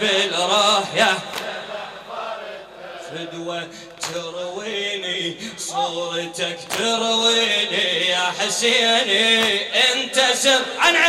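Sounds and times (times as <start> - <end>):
man chanting a lament: 3.0 - 11.0.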